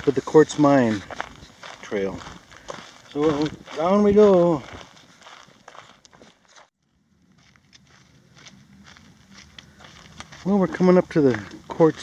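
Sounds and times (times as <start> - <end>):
footsteps crunching on gravel: 0.0 - 12.0.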